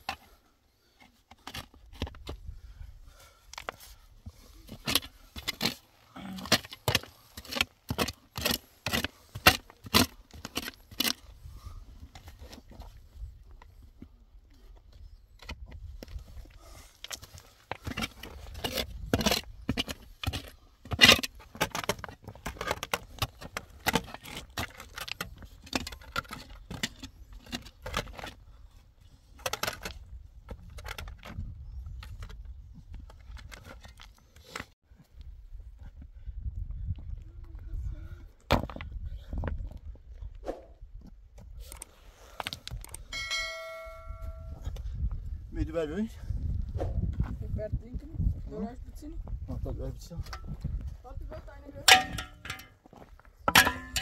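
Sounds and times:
metal shovel digging stony soil: 4.6s - 11.4s, 17.0s - 28.3s, 51.9s - 52.8s, 53.5s - 54.0s.

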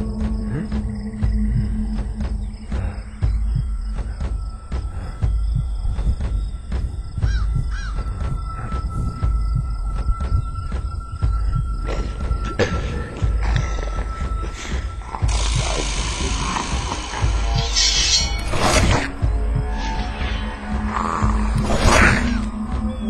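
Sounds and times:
regular ticking: 0.0s - 21.6s
low throbbing pulse: 0.0s - 23.0s
steady high tone: 13.3s - 21.6s.

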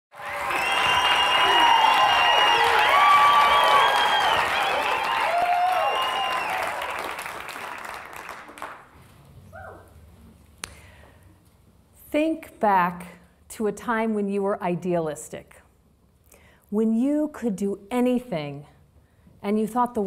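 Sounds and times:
audience applauding: 0.1s - 8.9s
whoops and calls: 0.2s - 6.9s.

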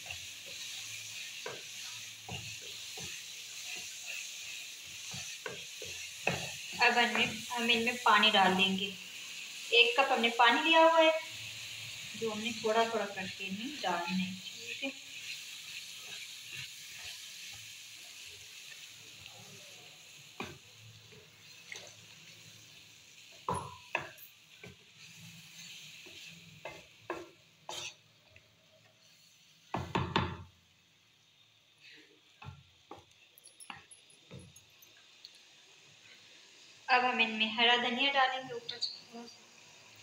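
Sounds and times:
spatula scraping pan: 0.0s - 7.4s, 23.9s - 28.0s
food sizzling: 0.0s - 40.0s.

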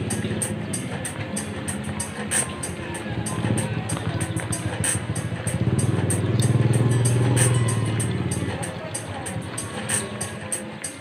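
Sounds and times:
background music with hi-hat beat: 0.0s - 11.0s
motorcycle engine passing: 2.8s - 9.6s.

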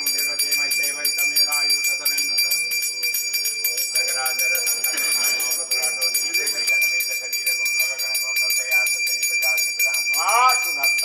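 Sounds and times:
hand bell rung rapidly: 0.0s - 11.0s
voices chanting: 0.0s - 11.0s.

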